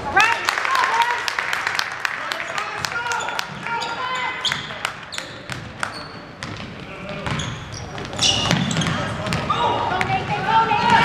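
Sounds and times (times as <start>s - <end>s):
sneaker squeaks: 3.1s - 11.0s
basketball bouncing on wooden floor: 6.4s - 11.0s.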